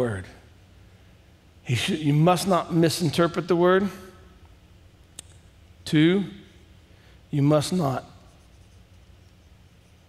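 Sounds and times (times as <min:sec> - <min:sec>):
low steady hum: 0:00.0 - 0:10.0
stylus scratching on a screen: 0:08.3 - 0:10.0.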